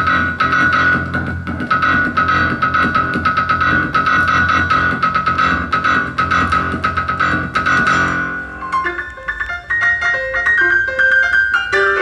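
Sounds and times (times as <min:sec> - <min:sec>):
jazz piano notes: 0:00.0 - 0:12.0.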